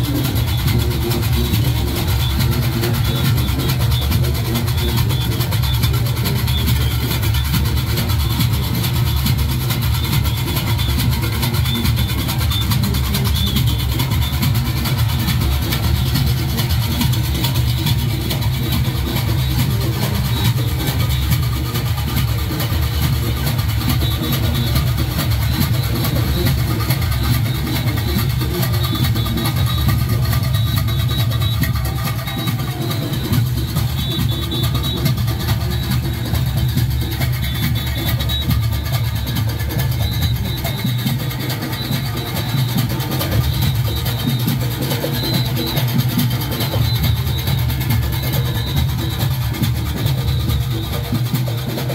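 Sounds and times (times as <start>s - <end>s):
drums and cowbells parade music: 0.0s - 51.9s.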